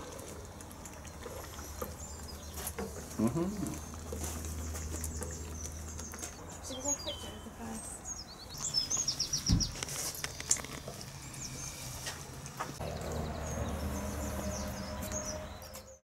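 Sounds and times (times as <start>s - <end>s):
small birds chirping: 0.0s - 16.0s
dull thump: 9.5s - 9.8s.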